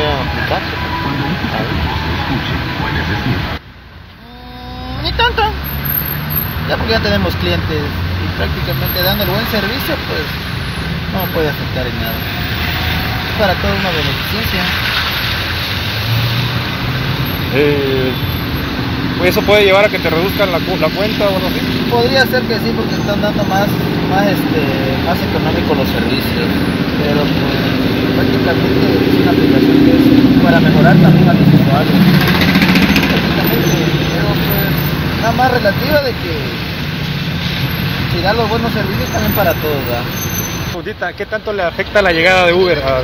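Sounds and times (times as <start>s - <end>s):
street traffic noise: 0.0s - 43.0s.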